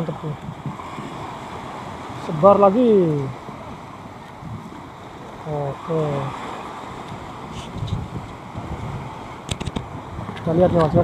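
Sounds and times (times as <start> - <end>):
small waves breaking on sand: 0.0 - 11.0
wind buffeting microphone: 0.0 - 11.0.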